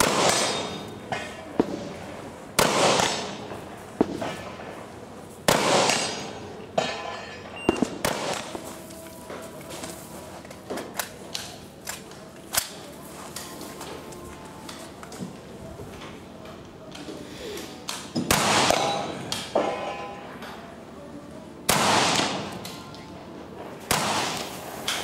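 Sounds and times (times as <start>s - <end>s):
rifle shots echoing: 0.0s - 0.9s, 2.6s - 4.4s, 5.5s - 6.4s, 7.7s - 8.6s, 18.3s - 19.1s, 21.7s - 22.5s, 23.9s - 24.6s
faint gunshot cracks: 21.7s - 22.5s.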